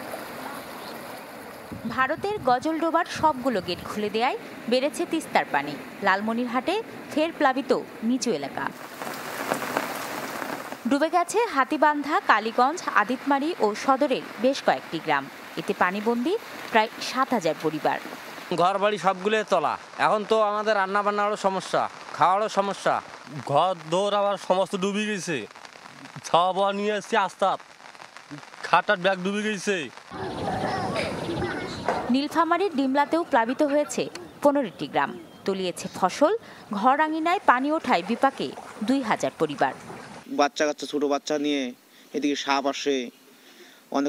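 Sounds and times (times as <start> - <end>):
rain falling on floodwater: 0.0 - 1.8, 2.8 - 35.1, 36.3 - 40.3
man talking: 18.5 - 27.6, 28.3 - 29.9, 40.3 - 43.1.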